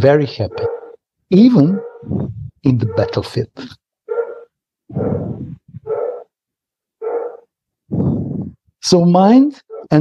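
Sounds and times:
dog barking: 0.4 - 1.0, 1.6 - 3.4, 4.0 - 6.4, 7.0 - 7.5, 9.7 - 10.0.

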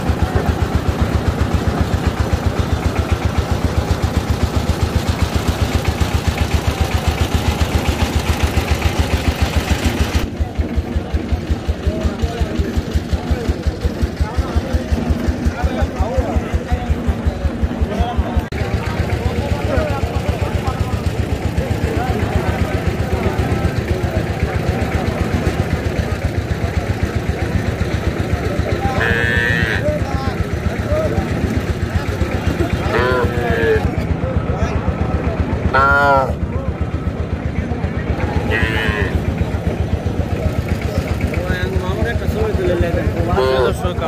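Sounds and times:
engine running with fast pulse: 0.0 - 44.0
voices calling out: 0.0 - 44.0.

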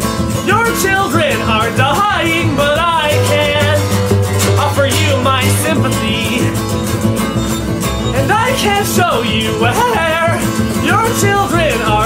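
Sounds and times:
recorded folk-punk song: 0.0 - 12.0.

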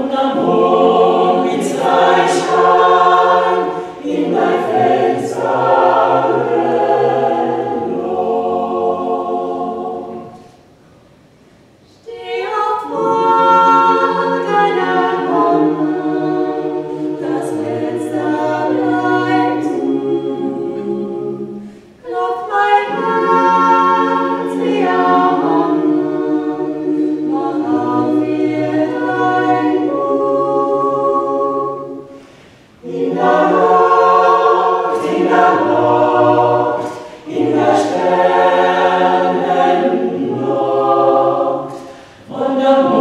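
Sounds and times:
choir singing a cappella: 0.0 - 10.8, 12.0 - 43.0.

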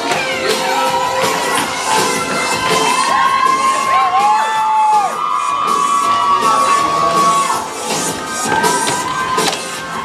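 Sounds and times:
dance music: 0.0 - 10.0
audience cheering and whooping: 0.2 - 10.0.

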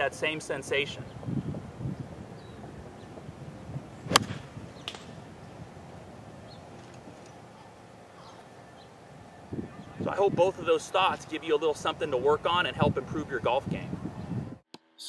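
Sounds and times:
golf club striking ball: 4.1 - 5.4.

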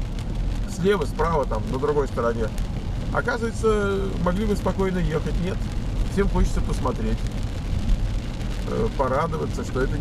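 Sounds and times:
rain on car: 0.0 - 10.0.

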